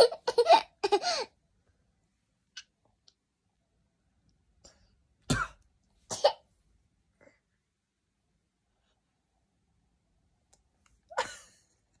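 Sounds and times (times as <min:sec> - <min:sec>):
person coughing: 0:05.3 - 0:06.4.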